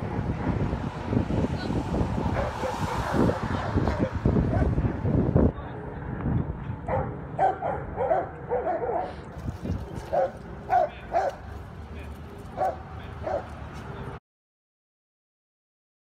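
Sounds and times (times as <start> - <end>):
dogs yipping: 6.9 - 9.2, 10.0 - 11.5, 12.5 - 13.6.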